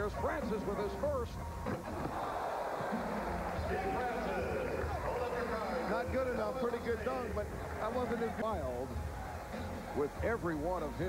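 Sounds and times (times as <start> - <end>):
arena crowd noise: 1.7 - 11.0.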